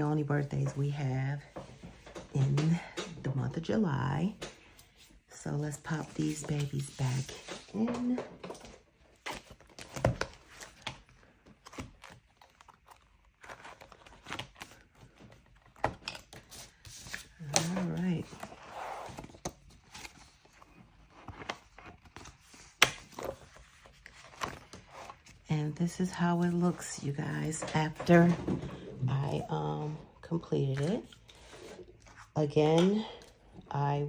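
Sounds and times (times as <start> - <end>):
paper pages rustling: 5.8 - 28.3.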